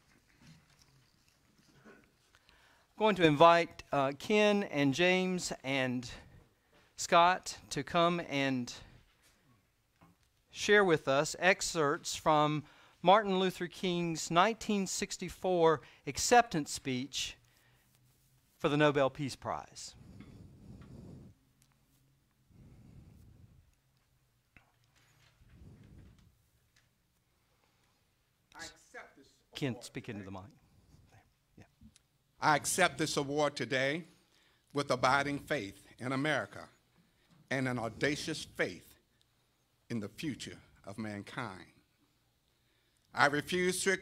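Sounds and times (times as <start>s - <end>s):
shuffling and handling noise: 0.0s - 2.5s, 17.4s - 18.9s, 23.2s - 28.1s.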